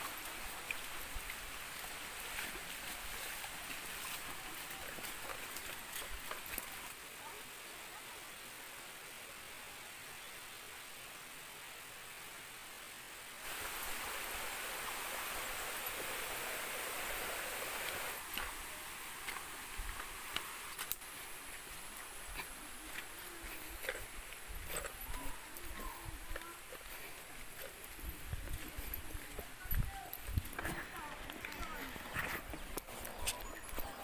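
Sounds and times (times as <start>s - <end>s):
footsteps on dirt trail: 0.1s - 6.9s, 18.2s - 34.0s.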